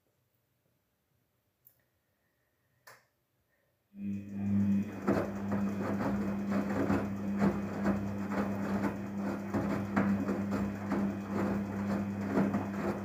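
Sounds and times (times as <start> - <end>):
washing machine motor hum: 4.0 - 13.0
wet laundry tumbling: 4.7 - 13.0.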